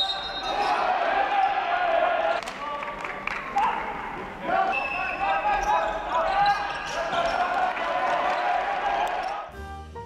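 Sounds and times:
sneakers squeaking: 0.0 - 0.9, 4.7 - 8.6
players shouting: 0.0 - 2.6, 3.4 - 9.5.

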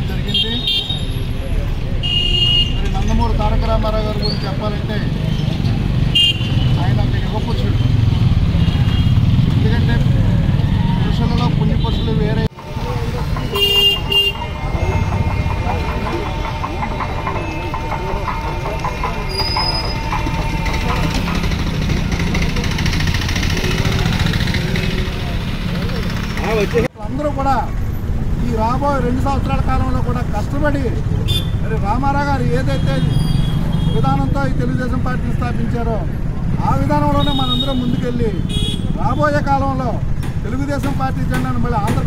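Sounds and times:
motor traffic: 0.0 - 42.0
vehicle horn honking: 2.0 - 2.9, 6.1 - 6.8, 13.4 - 18.1, 31.3 - 31.6, 37.2 - 39.0
people talking: 11.2 - 27.7.

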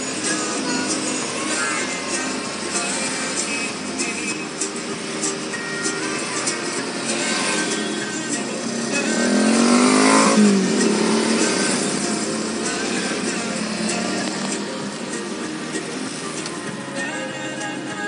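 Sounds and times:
vehicle engine revving: 0.0 - 17.6
city traffic noise: 0.0 - 18.0
music playing: 0.0 - 18.0.

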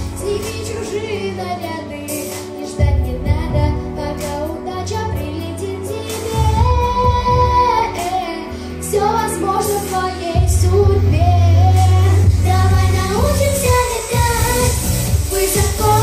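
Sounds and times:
girl singing into microphone: 0.0 - 16.0
pop backing track: 0.0 - 16.0.

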